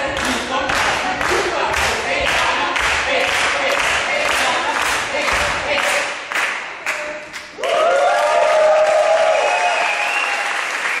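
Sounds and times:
voices cheering: 7.6s - 10.8s
audience applauding: 7.6s - 11.0s.

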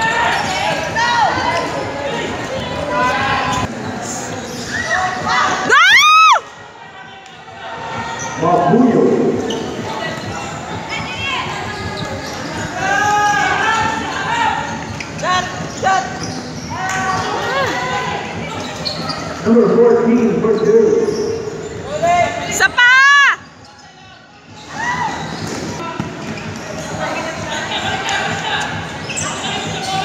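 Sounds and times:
girls shouting and shrieking: 4.7s - 6.4s.

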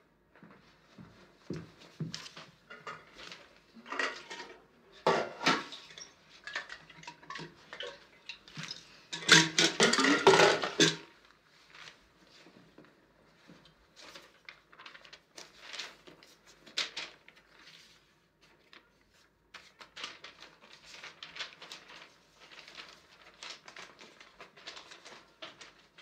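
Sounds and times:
paper and bedclothes rustling: 0.4s - 6.5s, 10.6s - 26.0s.

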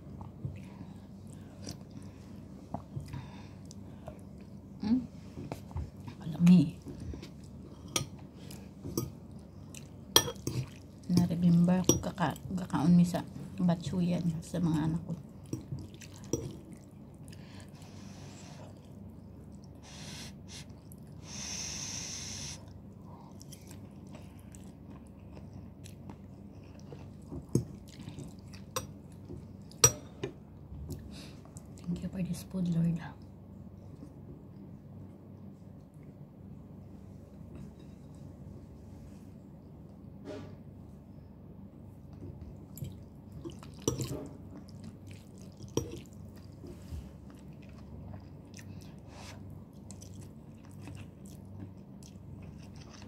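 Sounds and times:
person chewing noodles: 9.3s - 11.1s, 15.5s - 21.2s, 22.0s - 29.8s, 42.6s - 46.6s, 47.2s - 53.0s
person slurping and chewing noodles: 42.8s - 46.6s.

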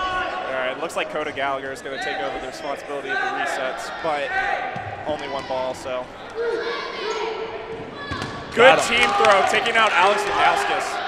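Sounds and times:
players calling out: 0.0s - 11.0s
balls bouncing on wooden floor: 7.7s - 8.6s.

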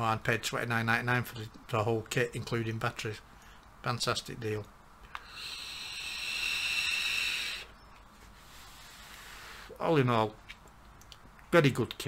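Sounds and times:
whistling hiss of vape inhale: 5.2s - 9.8s.

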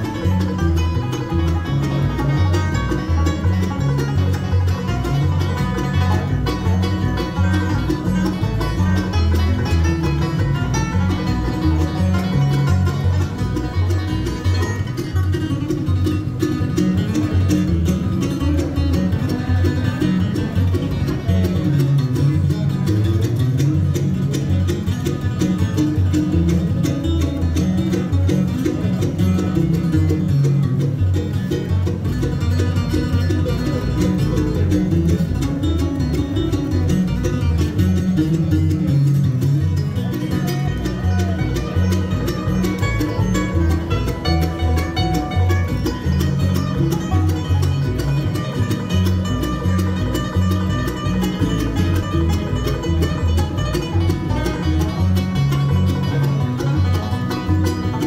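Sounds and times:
acoustic guitar picking: 0.0s - 58.0s
banjo: 0.0s - 58.0s
mandolin: 0.0s - 58.0s
upright bass: 0.0s - 58.0s.

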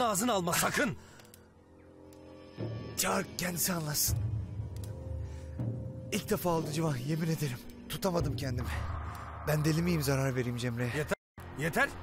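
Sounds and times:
sustained chord background music: 0.0s - 12.0s.

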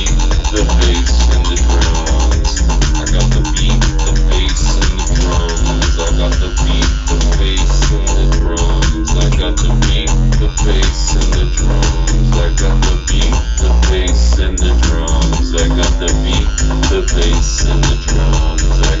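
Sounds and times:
arpeggiated synth line: 0.0s - 19.0s
busy drum beat: 0.0s - 19.0s
deep bass drone: 0.0s - 19.0s.

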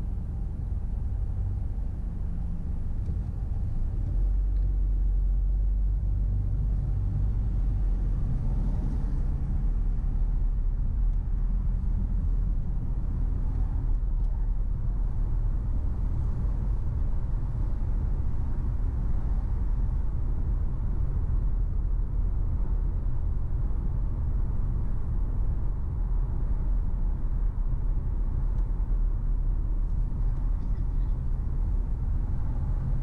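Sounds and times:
car engine and road noise: 0.0s - 33.0s.

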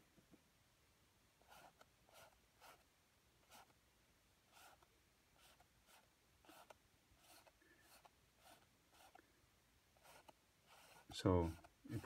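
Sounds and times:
paint brush swishes: 4.5s - 9.2s, 10.0s - 12.0s.

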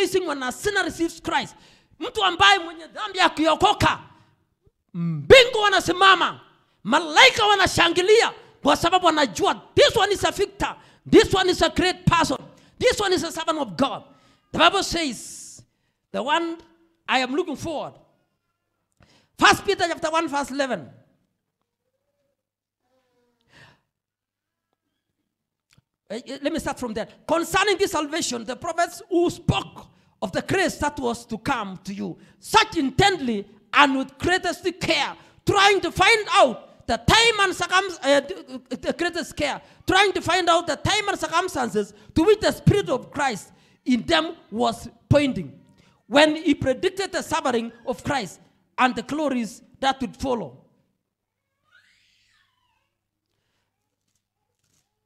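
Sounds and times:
short breath into microphone: 1.6s - 2.0s.

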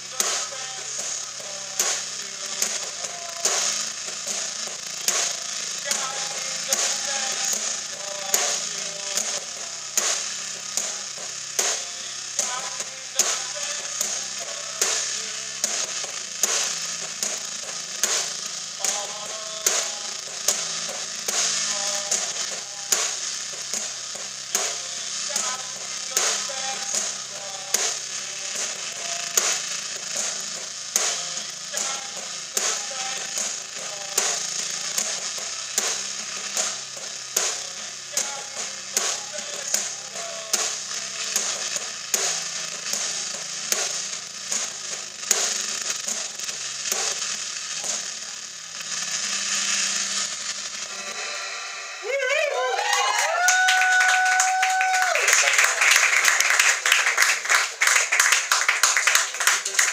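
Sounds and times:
drum kit with cymbals: 0.0s - 59.9s
electric guitar: 0.0s - 59.9s.

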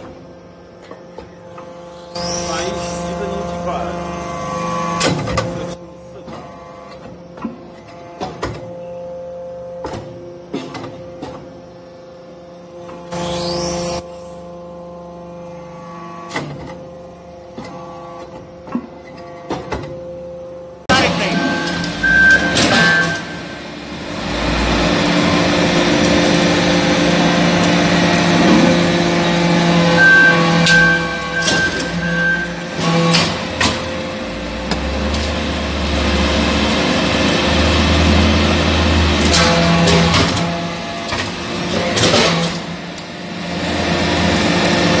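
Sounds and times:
loud machine rumble: 0.0s - 17.6s, 20.1s - 45.0s
hydraulic unit humming: 0.0s - 45.0s.

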